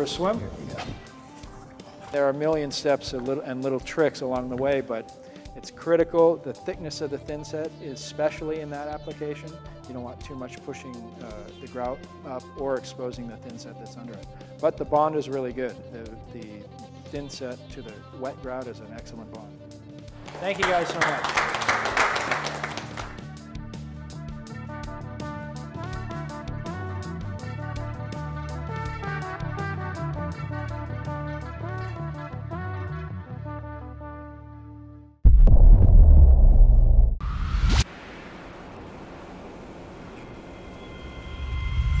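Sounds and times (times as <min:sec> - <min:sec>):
background music: 0:00.0 - 0:35.2
small group applauding: 0:20.2 - 0:23.2.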